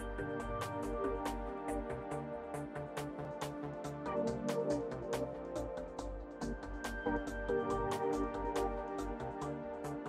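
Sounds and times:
bass line: 0.0s - 10.0s
light percussion beat: 0.0s - 10.0s
relaxing background music: 0.0s - 10.0s.

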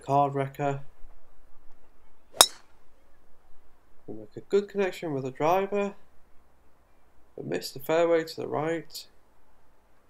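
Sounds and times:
golf club striking ball: 2.4s - 2.8s.

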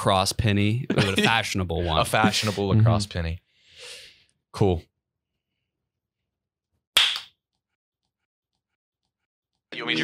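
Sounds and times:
sharp crack: 7.0s - 7.3s.

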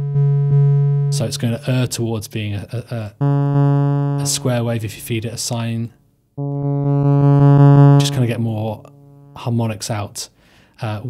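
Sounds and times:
buzzy pulsing synth tone: 0.0s - 1.4s, 3.2s - 4.6s, 6.4s - 9.6s.

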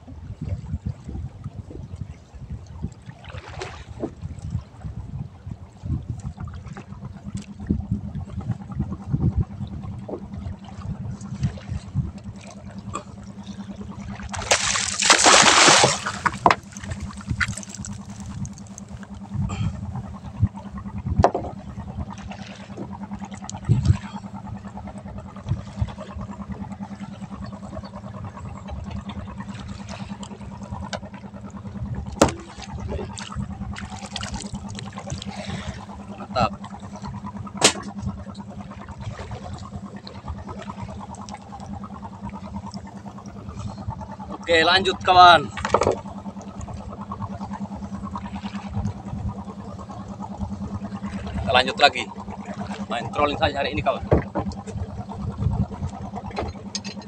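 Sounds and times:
boat engine idling: 0.0s - 57.0s
water splashing against boat: 0.0s - 57.0s
sharp knocks against boat: 3.4s - 4.2s, 10.0s - 10.4s, 14.1s - 19.7s, 20.4s - 24.1s, 28.7s - 31.2s, 31.9s - 35.7s, 36.3s - 39.4s, 45.4s - 46.8s, 51.1s - 57.0s
loud splash: 14.3s - 17.9s.

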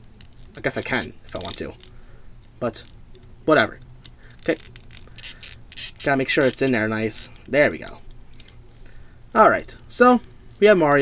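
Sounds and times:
plastic parts scraping: 0.2s - 2.0s, 4.2s - 7.5s.

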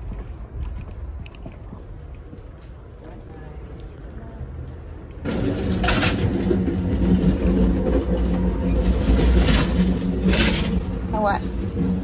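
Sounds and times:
train car rumble and hum: 0.0s - 12.0s.

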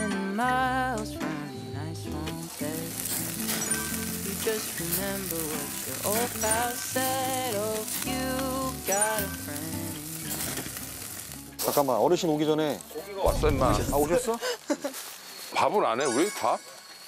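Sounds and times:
background music with gliding notes: 0.0s - 13.2s
meat sizzling on a grill: 2.0s - 17.0s.

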